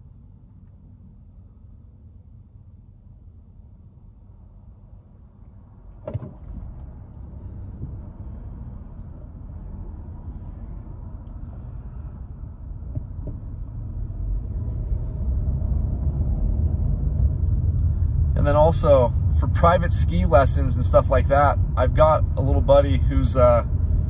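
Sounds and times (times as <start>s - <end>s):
car engine and tyre rumble: 0.0s - 24.0s.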